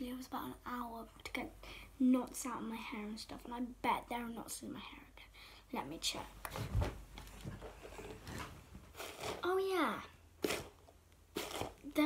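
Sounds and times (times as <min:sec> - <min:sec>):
clothing rustling: 0:06.5 - 0:09.4.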